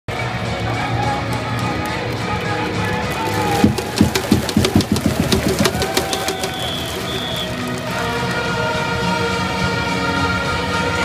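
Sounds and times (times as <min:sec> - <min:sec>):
sharp percussive strikes: 0:03.5 - 0:07.6.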